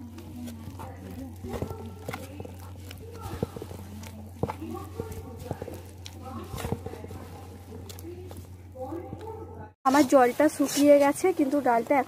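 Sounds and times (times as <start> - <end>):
steady low hum: 0.0 - 11.7
hands kneading dough in bowl: 0.0 - 12.0.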